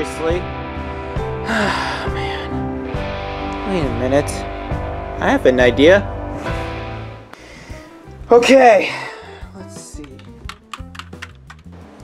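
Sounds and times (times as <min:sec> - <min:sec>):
soft background music: 0:00.0 - 0:12.0
keyboard typing clicks: 0:10.0 - 0:11.7.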